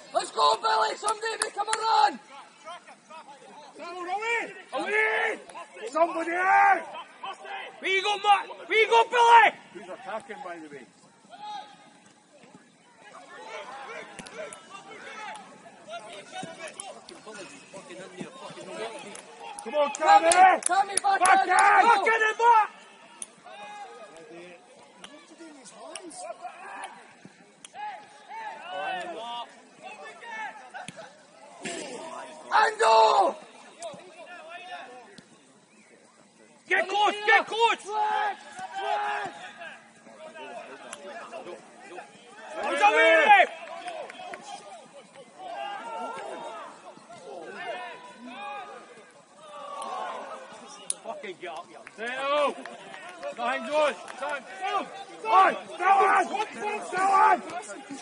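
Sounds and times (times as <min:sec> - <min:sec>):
faint open-air background noise: 0:00.0 - 0:58.0.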